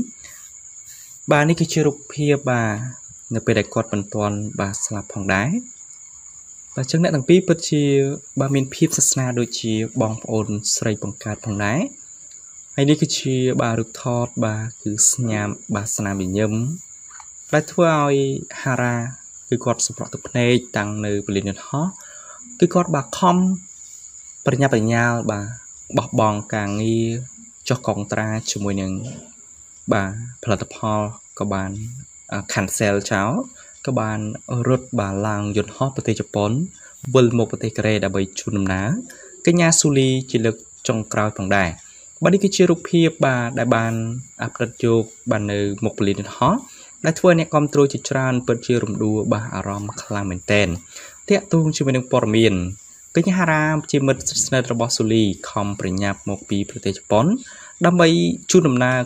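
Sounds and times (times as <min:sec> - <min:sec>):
man narrating: 0:00.0 - 0:05.7, 0:06.8 - 0:12.0, 0:12.8 - 0:23.7, 0:24.5 - 0:29.3, 0:29.9 - 0:59.0
person talking: 0:00.0 - 0:05.7, 0:06.8 - 0:12.0, 0:12.8 - 0:23.7, 0:24.5 - 0:59.0.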